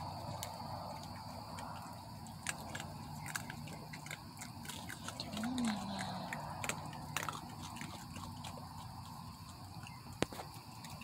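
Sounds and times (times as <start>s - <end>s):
raccoons crunching dry kibble: 0.0s - 11.0s.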